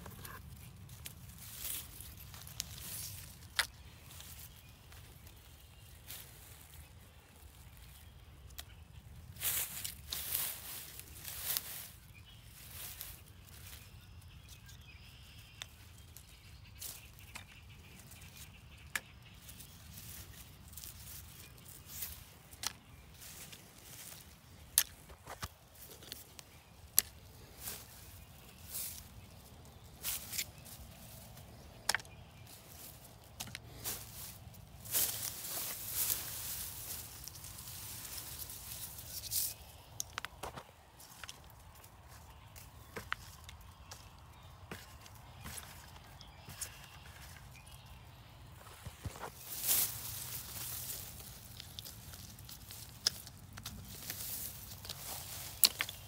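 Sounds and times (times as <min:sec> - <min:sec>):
grass and plastic rustling: 0:00.0 - 0:56.0.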